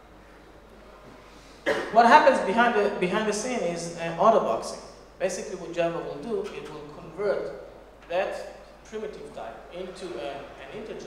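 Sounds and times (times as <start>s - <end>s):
man coughing: 1.6s - 2.1s
man speaking: 1.9s - 11.0s.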